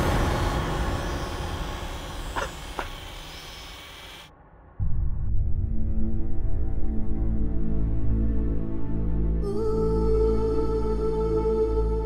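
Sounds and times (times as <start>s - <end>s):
low rumbling music drone: 0.0s - 12.0s.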